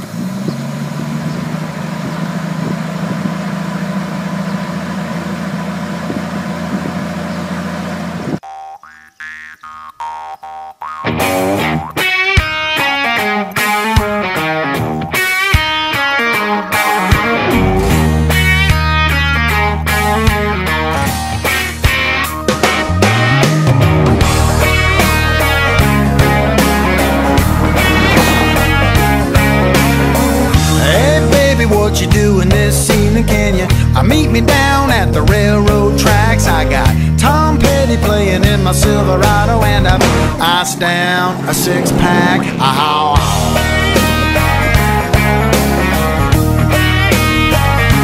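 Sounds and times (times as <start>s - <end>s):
pickup engine idling: 0.0s - 8.4s, 17.7s - 48.0s
country-rock song with guitar: 11.0s - 48.0s.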